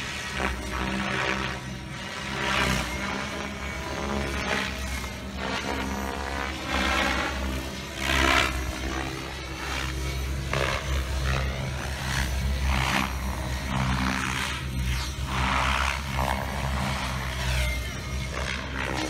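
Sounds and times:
model helicopter rotor and motor: 0:00.0 - 0:19.0.

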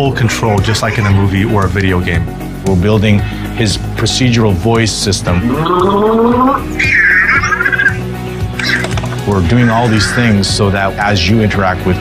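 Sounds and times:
background music: 0:00.0 - 0:12.0
warbling robot voice: 0:00.7 - 0:01.3, 0:05.4 - 0:08.0, 0:08.6 - 0:10.4.

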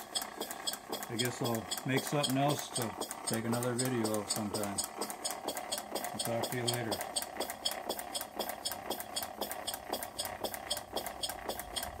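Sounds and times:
light fast ticking: 0:00.0 - 0:12.0
model steam engine clicking: 0:00.0 - 0:12.0.

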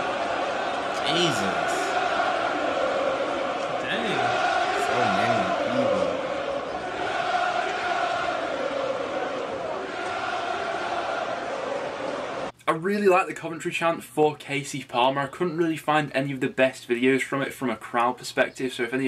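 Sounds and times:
football fans chanting: 0:00.0 - 0:12.5.

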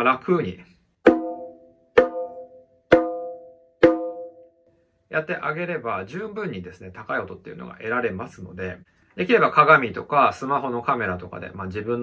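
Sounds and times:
conga open slaps: 0:01.0 - 0:04.4.

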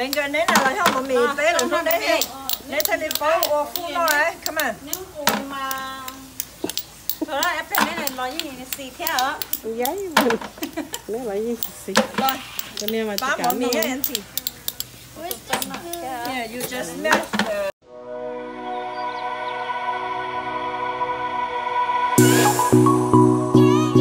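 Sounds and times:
metal spoons tapping snail shells: 0:00.0 - 0:17.6
voices talking: 0:00.0 - 0:17.8.

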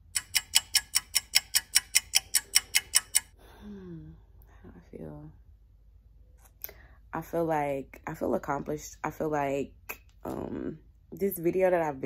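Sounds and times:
rapid clock ticking: 0:00.0 - 0:03.4.

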